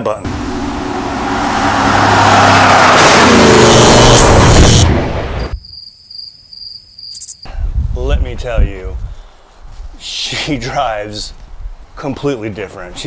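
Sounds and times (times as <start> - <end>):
vehicle passing by at speed: 0.3 - 5.4.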